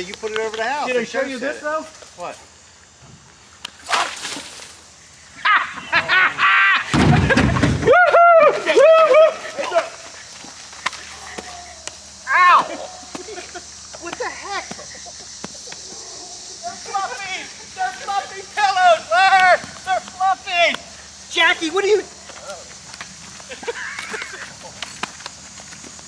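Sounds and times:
people yelling and shrieking: 5.4s - 22.8s.

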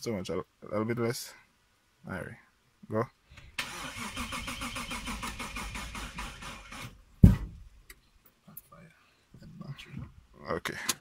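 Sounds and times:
engine cranking on starter: 3.6s - 7.0s
loud thump: 7.2s - 7.7s.

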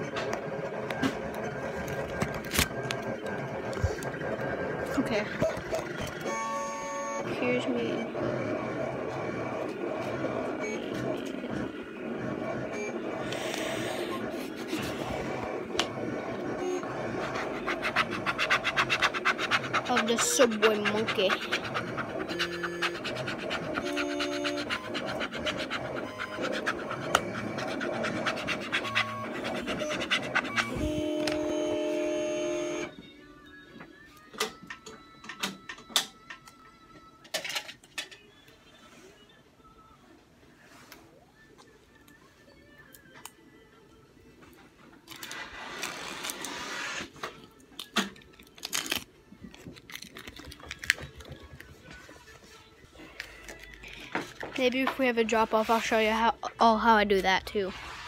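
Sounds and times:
background music: 15.4s - 58.0s.

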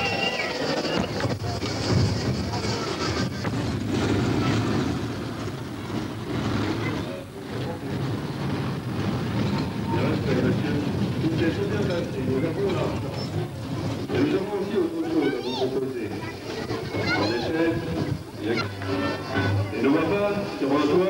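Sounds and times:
people talking: 0.0s - 21.0s
small train rumbling past: 0.0s - 21.0s.

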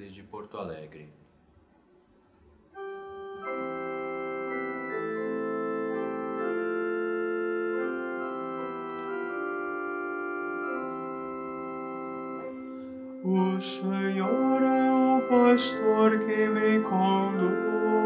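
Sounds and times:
organ keyboard sustained chords: 2.6s - 18.0s.

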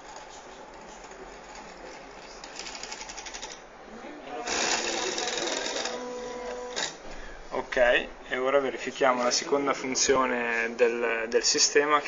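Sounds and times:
electric motor buzzing: 4.4s - 7.0s.

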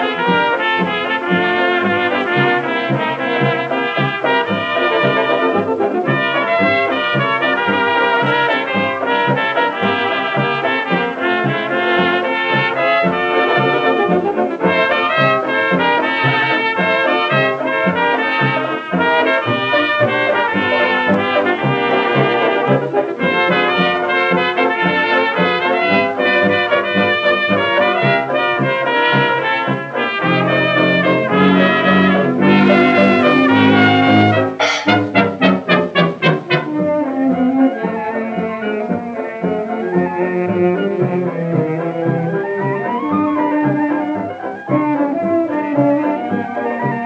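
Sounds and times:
old dance orchestra record: 0.0s - 47.0s.

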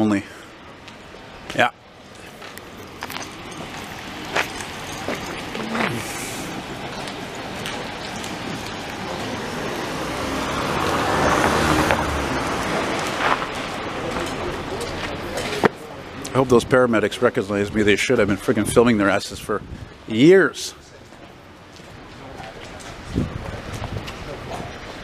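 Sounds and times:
car passing by: 3.3s - 15.7s.

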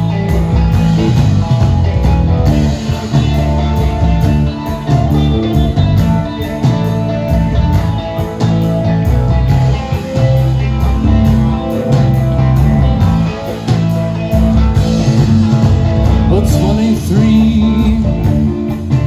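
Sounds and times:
bass guitar: 0.0s - 19.0s
electric guitar: 0.0s - 19.0s
steady drum beat: 0.0s - 19.0s.

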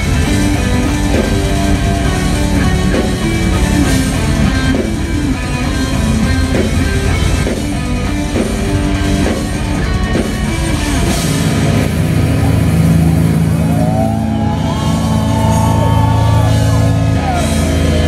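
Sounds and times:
busy drumming: 0.0s - 18.0s
high melodic guitar line: 0.0s - 18.0s
metal band playing live: 0.0s - 18.0s.

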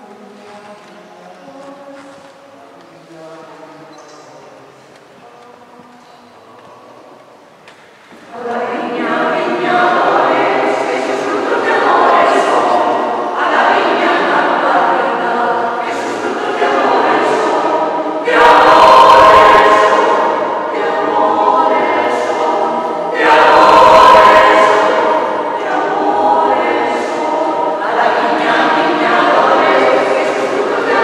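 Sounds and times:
mixed choir singing: 8.1s - 31.0s.

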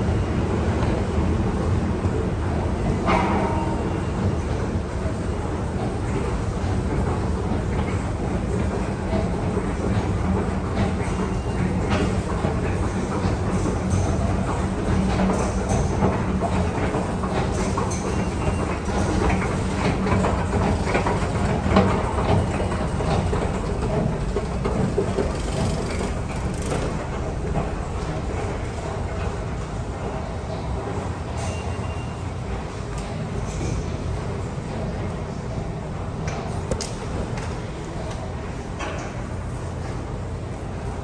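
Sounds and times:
subway train rumbling: 0.0s - 41.0s.

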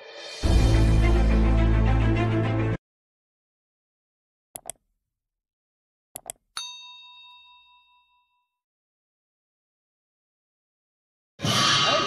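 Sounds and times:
mouse click sound effects: 4.6s - 4.8s, 6.2s - 6.4s
bell ding: 6.6s - 8.5s.

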